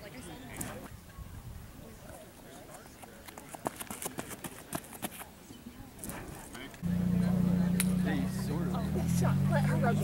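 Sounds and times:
running footsteps on a track: 0:02.9 - 0:05.3.

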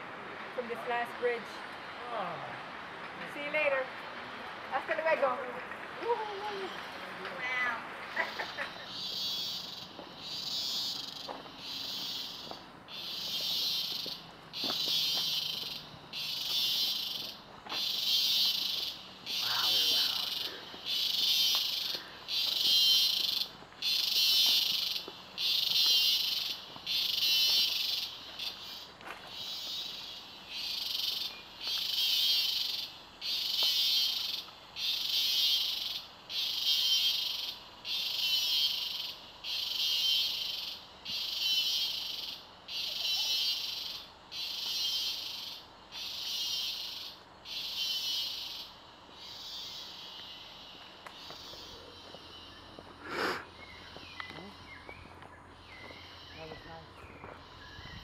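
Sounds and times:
insects buzzing in pulses: 0:06.3 - 0:58.0.

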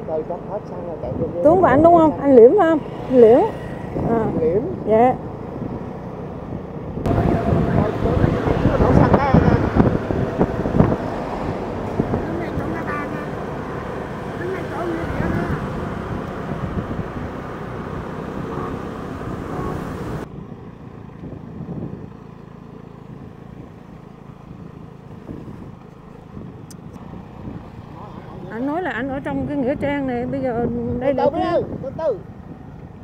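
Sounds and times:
vehicle engine and road noise: 0:00.0 - 0:33.0.

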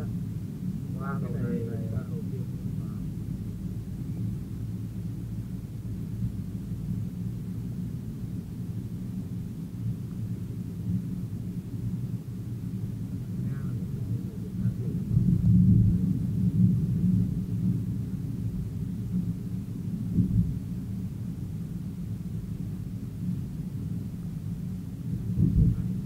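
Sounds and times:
car driving rumble: 0:00.0 - 0:07.0, 0:11.7 - 0:23.8, 0:24.4 - 0:26.0.

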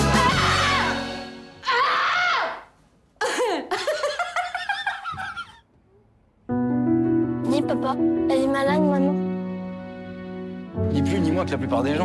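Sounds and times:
laughter: 0:03.2 - 0:05.7
music with held chord: 0:06.5 - 0:12.0.

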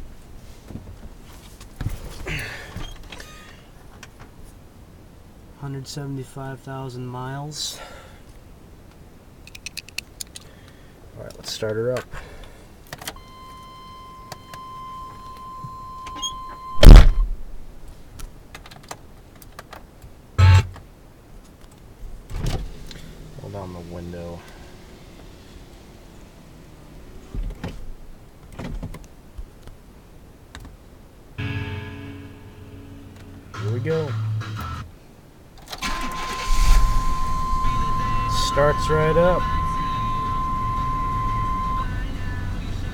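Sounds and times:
high electronic warning beep: 0:13.2 - 0:17.2, 0:20.4 - 0:20.7, 0:35.9 - 0:42.9
loud thump: 0:16.8 - 0:17.4
car engine running: 0:20.4 - 0:20.7, 0:36.3 - 0:42.9
steady high tone: 0:20.4 - 0:20.7, 0:31.4 - 0:34.8, 0:35.8 - 0:42.9
car starter cranking: 0:35.6 - 0:41.9.

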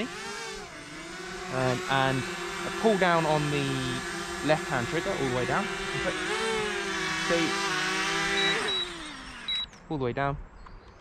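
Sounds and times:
drone propellers whining: 0:00.0 - 0:09.9.

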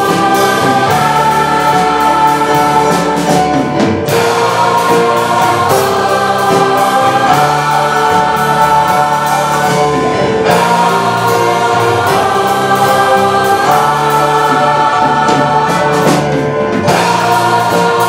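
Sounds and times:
choir singing in harmony: 0:00.0 - 0:18.0.

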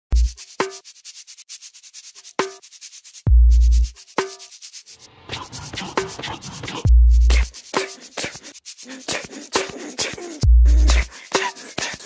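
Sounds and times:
rapid hi-hat ticks: 0:00.1 - 0:12.0.

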